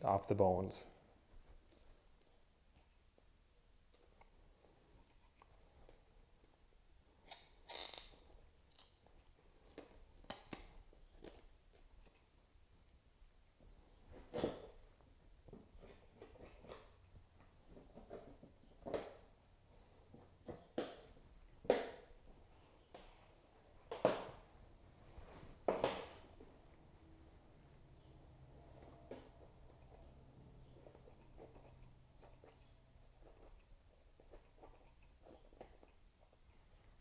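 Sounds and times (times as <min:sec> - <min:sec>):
faint handling sounds: 0:00.8 - 0:37.0.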